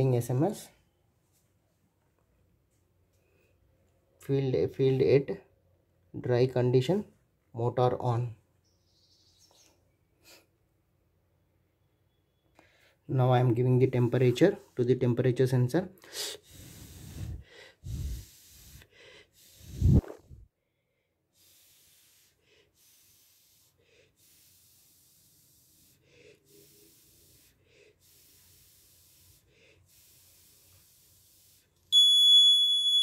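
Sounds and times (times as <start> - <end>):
faint hiss: 16.0 - 20.4, 21.3 - 32.0
person blowing breathy exhalations: 16.0 - 20.5, 21.3 - 31.8.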